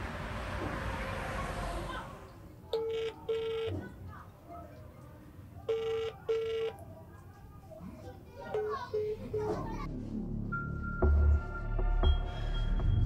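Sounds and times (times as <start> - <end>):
phone ringback tone: 2.8 - 3.7, 5.7 - 6.7.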